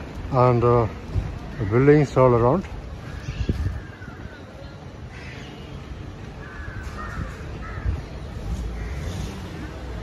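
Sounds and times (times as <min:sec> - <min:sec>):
caw-like bird calls: 0:03.0 - 0:04.5, 0:05.1 - 0:05.8, 0:06.4 - 0:09.8.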